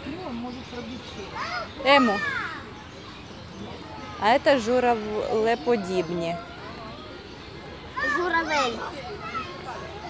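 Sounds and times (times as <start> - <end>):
people talking: 0.0 - 2.6, 3.6 - 7.3
faint outdoor background noise: 0.0 - 10.0
child's voice: 8.0 - 10.0.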